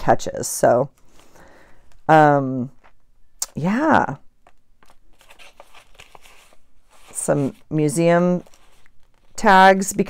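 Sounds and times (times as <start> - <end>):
paper and card rustling: 4.4 - 10.0.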